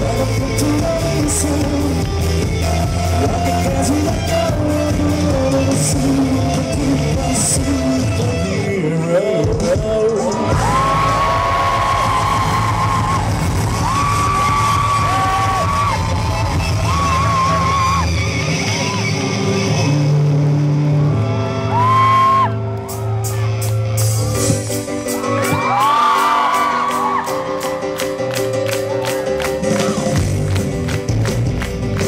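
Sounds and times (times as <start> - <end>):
person singing long notes: 0.0 - 11.3
live pop-rock band playing: 0.0 - 32.0.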